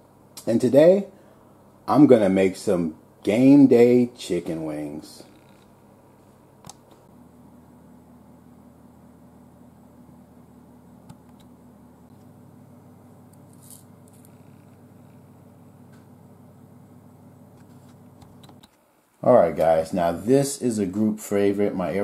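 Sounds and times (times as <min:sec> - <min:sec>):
faint low hum: 0:00.0 - 0:22.0.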